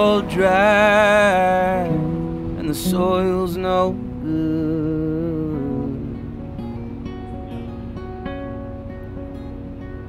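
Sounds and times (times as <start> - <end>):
man singing: 0.0 - 6.5
acoustic guitar strumming: 0.0 - 10.0.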